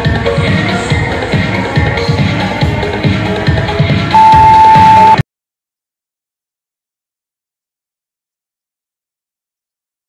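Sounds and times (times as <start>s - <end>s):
timer beep: 4.2s - 5.2s.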